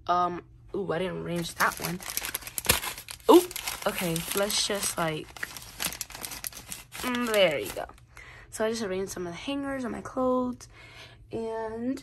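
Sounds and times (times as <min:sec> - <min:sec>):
clothes rustling: 0:01.4 - 0:07.8.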